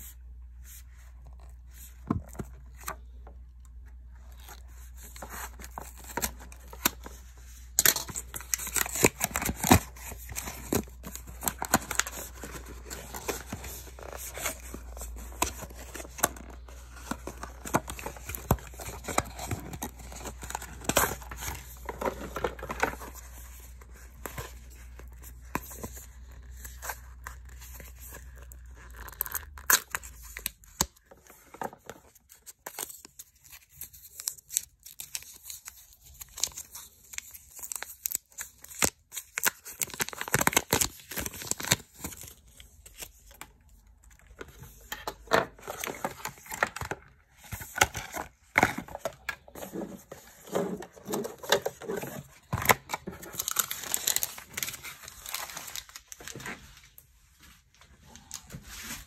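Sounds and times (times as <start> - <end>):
cardboard and paper crinkling: 4.0 - 59.0.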